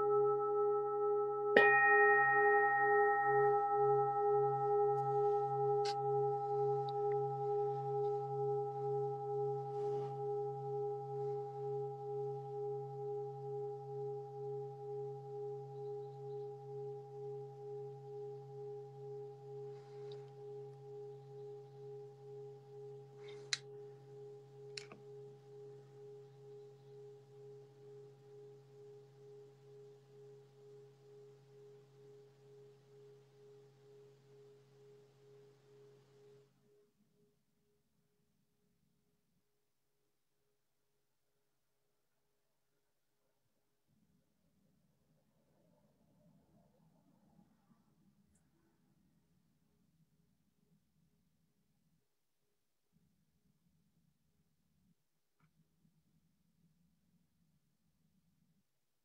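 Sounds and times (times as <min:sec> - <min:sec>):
meditation bell ringing: 0:00.0 - 0:35.9.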